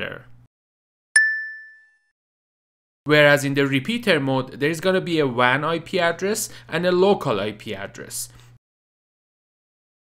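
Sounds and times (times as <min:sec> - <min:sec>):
bell-like ding: 0:01.2 - 0:02.1.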